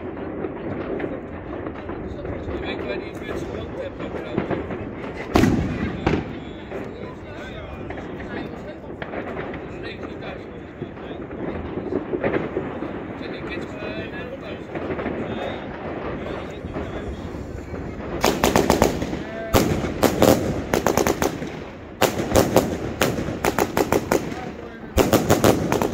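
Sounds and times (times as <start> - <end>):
firework shells bursting: 0.8 - 13.7, 14.6 - 25.9.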